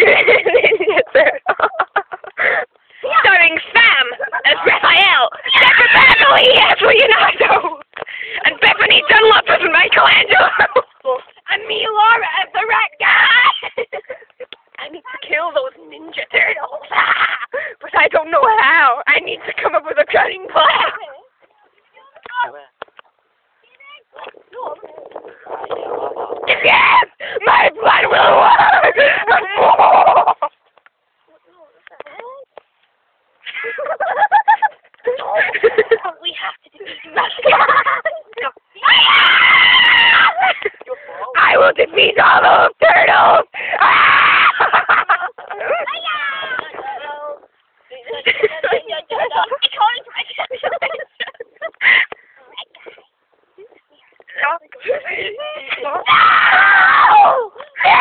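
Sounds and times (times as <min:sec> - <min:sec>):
girls laughing and shrieking: 0:00.0 - 0:14.5, 0:16.2 - 0:18.8, 0:23.8 - 0:30.7, 0:33.4 - 0:36.2, 0:36.8 - 0:47.4, 0:48.1 - 0:53.0, 0:54.8 - 0:58.0
young people screaming: 0:05.4 - 0:07.2, 0:13.0 - 0:13.7, 0:26.4 - 0:30.4, 0:38.8 - 0:40.7, 0:41.3 - 0:44.9, 0:55.6 - 0:58.0.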